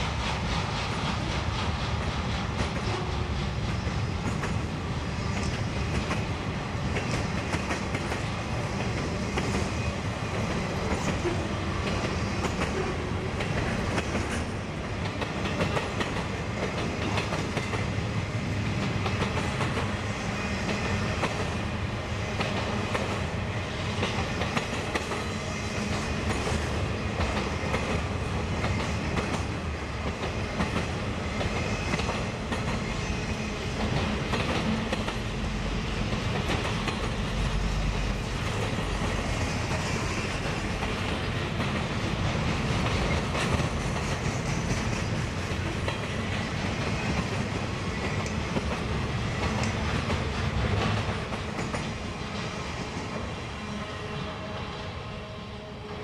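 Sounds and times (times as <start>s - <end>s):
train wheels clicking over rail joints: 0.0s - 54.2s
freight train rolling past: 0.0s - 56.0s.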